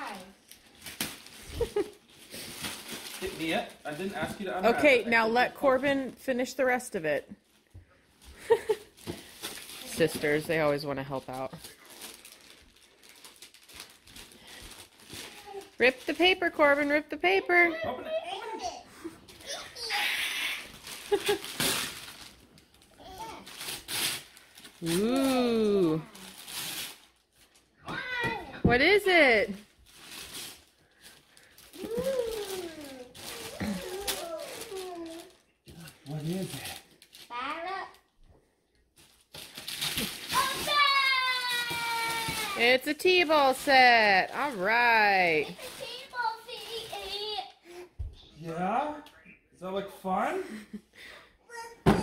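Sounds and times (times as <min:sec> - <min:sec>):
wrapping paper crinkling: 0:00.0 - 0:04.8, 0:07.4 - 0:17.4, 0:19.3 - 0:27.8, 0:29.5 - 0:38.2, 0:38.9 - 0:47.5.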